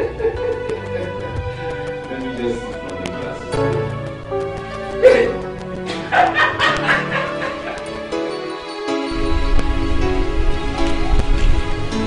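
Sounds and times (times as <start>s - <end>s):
background music: 0.0s - 12.0s
dog barking: 6.0s - 7.8s.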